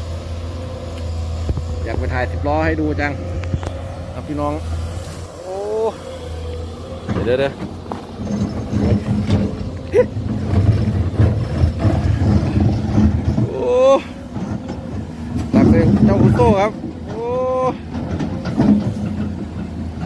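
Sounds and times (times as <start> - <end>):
excavator diesel engine under load: 0.0 - 20.0.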